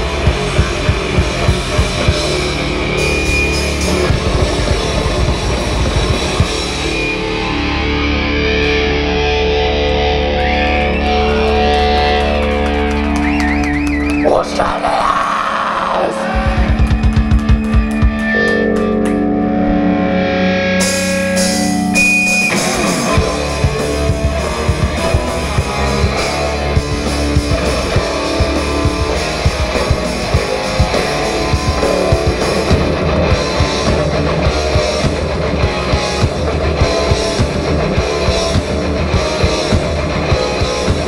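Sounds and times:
bass guitar: 0.0s - 41.0s
distorted electric guitars: 0.0s - 41.0s
drums: 0.0s - 41.0s
fast even drum hits: 16.4s - 18.3s.

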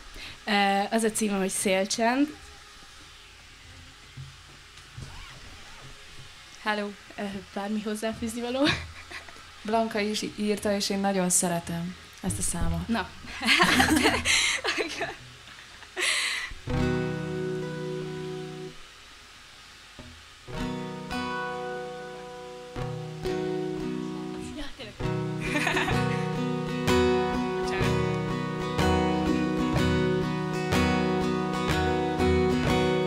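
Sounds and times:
acoustic guitar strumming chords: 12.3s - 15.4s, 16.6s - 18.9s, 20.0s - 33.0s.

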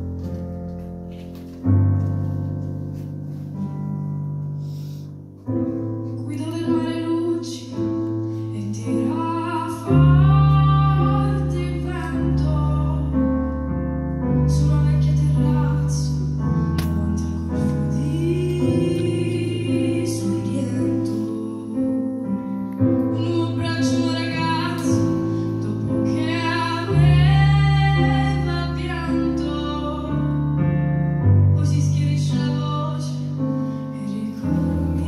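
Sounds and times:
woman singing into a microphone: 6.2s - 13.2s, 14.4s - 22.4s, 23.0s - 30.7s, 31.4s - 35.0s.

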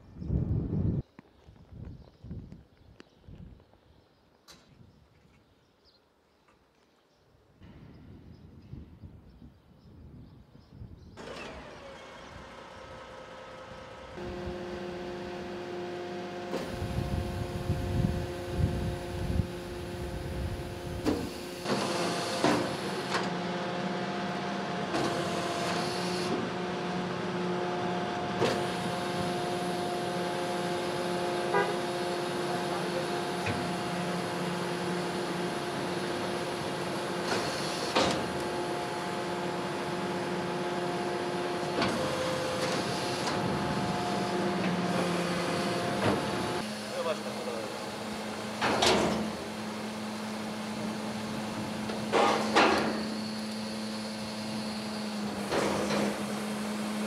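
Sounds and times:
hydraulic bin lift humming: 11.2s - 57.0s.

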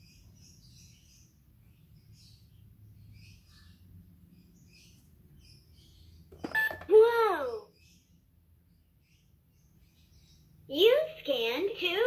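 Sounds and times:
short electronic beep: 6.5s - 6.9s.

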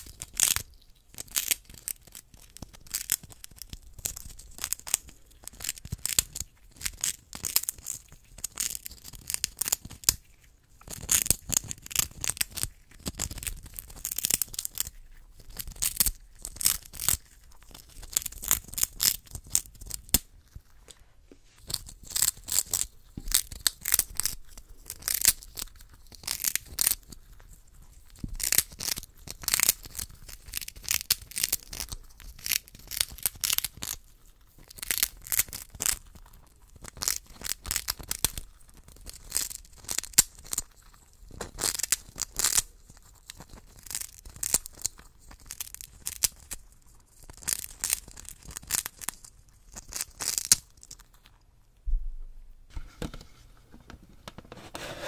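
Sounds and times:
hamster nibbling: 0.0s - 51.5s.

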